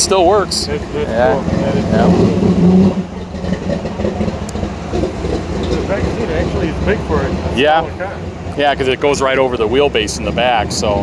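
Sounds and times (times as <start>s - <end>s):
distant voices: 0.0s - 11.0s
low street rumble: 0.0s - 11.0s.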